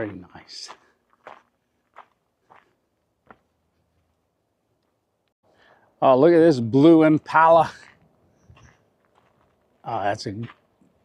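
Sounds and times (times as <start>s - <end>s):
faint footsteps on gravel: 0.0s - 4.2s, 7.6s - 11.0s.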